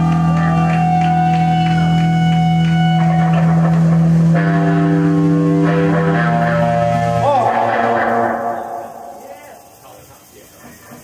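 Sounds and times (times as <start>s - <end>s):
low drone: 0.0s - 10.2s
electric guitars ringing notes: 0.0s - 10.3s.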